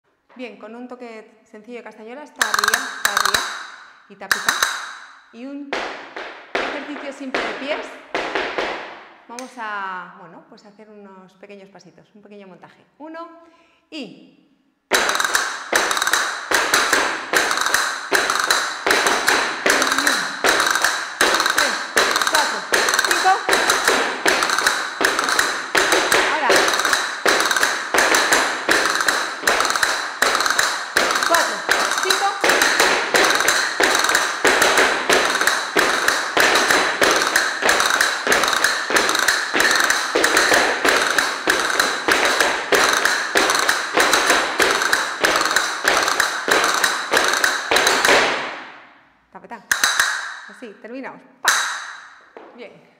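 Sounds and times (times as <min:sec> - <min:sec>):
castanets clicking: 0:02.4 - 0:05.1, 0:14.9 - 0:48.7, 0:49.7 - 0:50.4
heel taps on wooden floor: 0:14.9 - 0:48.6.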